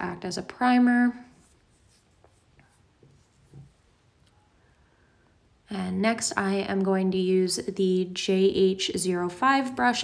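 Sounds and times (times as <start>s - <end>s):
makeup brushes rustling: 0.6s - 4.4s.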